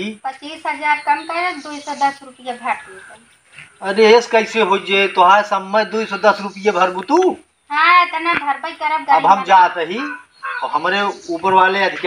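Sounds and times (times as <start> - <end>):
people talking: 0.0 - 3.2, 3.8 - 12.0.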